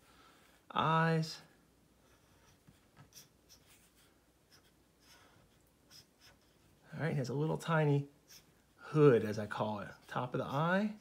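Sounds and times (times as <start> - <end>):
marker drawing on paper: 2.0 - 6.9, 8.2 - 11.0.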